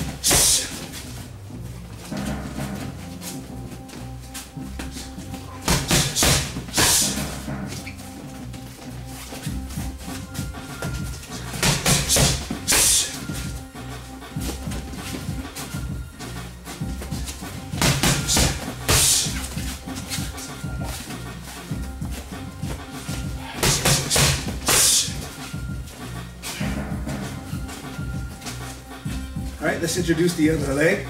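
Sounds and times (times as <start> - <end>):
background music: 0.0 - 31.0
punches and kicks smacking pads: 5.6 - 7.4, 9.5 - 13.6, 16.9 - 21.1, 21.8 - 25.8.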